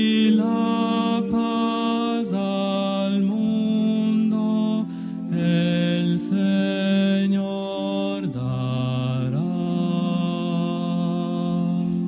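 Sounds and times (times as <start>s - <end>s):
voices singing slow hymn: 0.0s - 12.0s.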